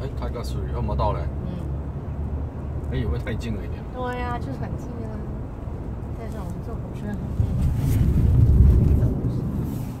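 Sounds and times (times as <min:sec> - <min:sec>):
car tyre and road rumble: 0:00.0 - 0:10.0.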